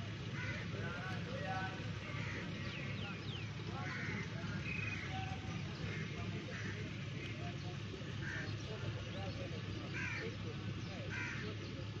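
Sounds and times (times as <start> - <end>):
faint background voices: 0.0 - 12.0
bird calling: 0.2 - 12.0.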